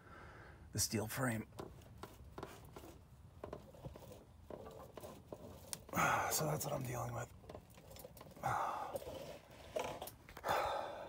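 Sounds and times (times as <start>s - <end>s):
ratchet strap under strain: 1.5s - 10.5s.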